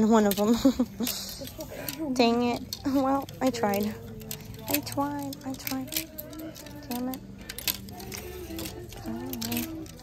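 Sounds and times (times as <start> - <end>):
plastic hangers scraping on metal rail: 0.0 - 10.0.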